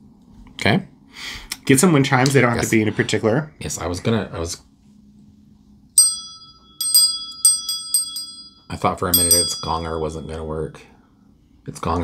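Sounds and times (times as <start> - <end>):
brass hand bell ringing: 6.0 - 10.4.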